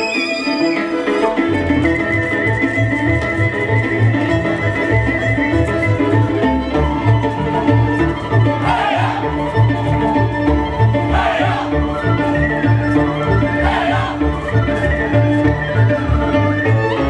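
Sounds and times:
fiddle folk dance music: 0:00.0 - 0:17.0.

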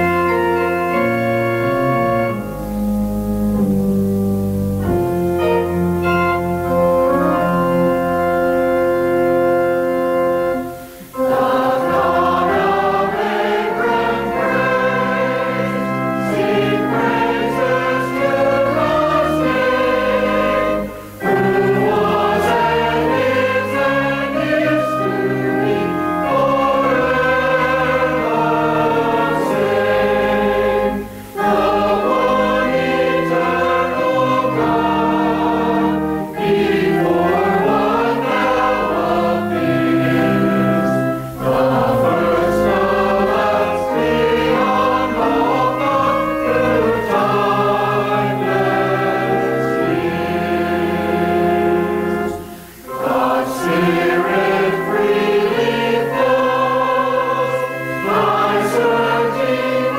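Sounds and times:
mixed choir singing: 0:00.0 - 0:02.7, 0:05.4 - 0:59.9.

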